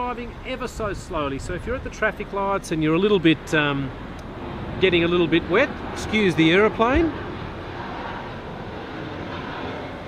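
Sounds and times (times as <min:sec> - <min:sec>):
aeroplane flying overhead: 0:00.0 - 0:10.0.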